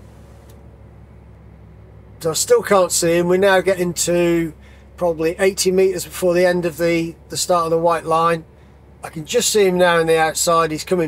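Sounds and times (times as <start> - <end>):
lorry engine hum: 0.0 - 11.0.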